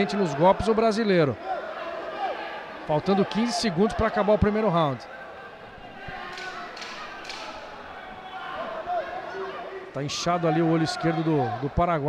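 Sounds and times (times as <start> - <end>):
faint shouting voices: 0.0 - 12.0.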